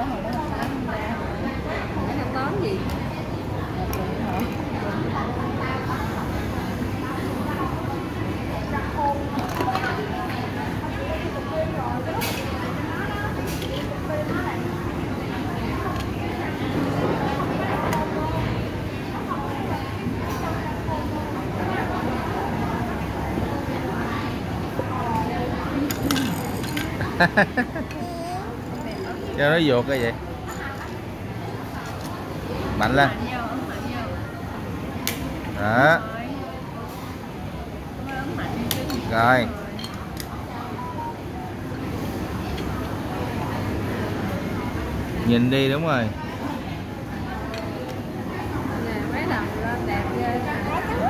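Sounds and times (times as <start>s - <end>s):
low hum of indoor space: 0.0s - 51.0s
murmur of indistinct voices: 0.0s - 51.0s.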